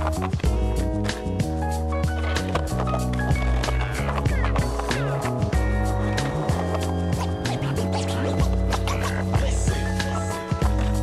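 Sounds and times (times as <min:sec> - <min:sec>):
music playing: 0:00.0 - 0:11.0
skateboard wheels rolling on concrete: 0:00.0 - 0:11.0
skateboard clacks popping and landing: 0:02.0 - 0:07.8.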